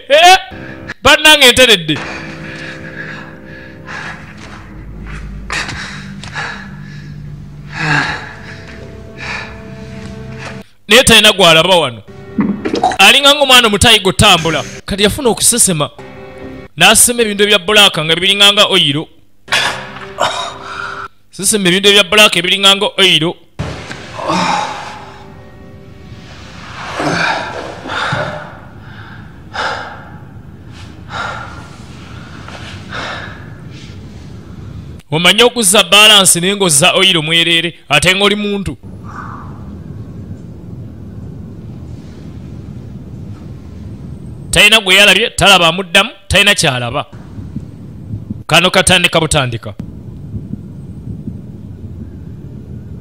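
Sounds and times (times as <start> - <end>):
low steady drone: 2.0 - 10.7, 12.0 - 13.5, 23.6 - 35.0, 38.8 - 44.5.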